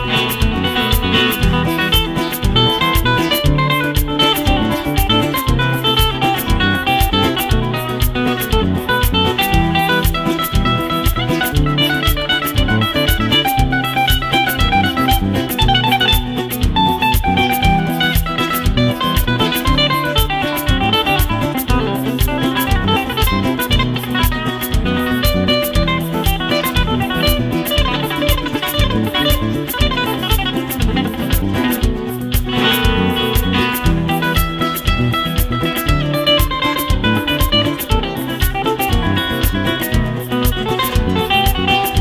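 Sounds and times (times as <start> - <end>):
amplified flamenco guitar: 0.0 - 42.0.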